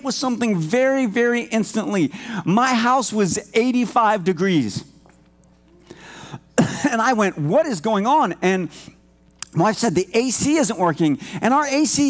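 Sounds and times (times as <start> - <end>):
man speaking: 0.0 - 4.9, 6.9 - 8.8, 9.4 - 12.0
man clearing throat: 6.5 - 7.0.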